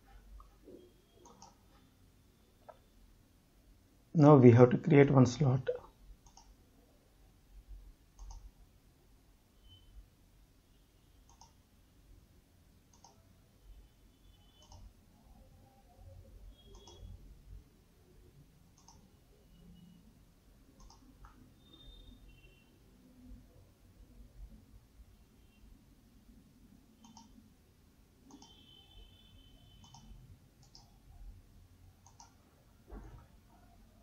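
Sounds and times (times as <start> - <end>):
faint mouse button clicks: 16.6 - 17.1, 29.8 - 30.9.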